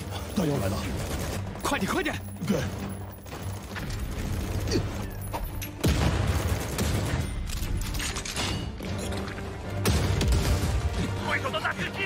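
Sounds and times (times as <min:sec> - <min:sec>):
gunfire with mechanical clanking: 0:00.0 - 0:08.7.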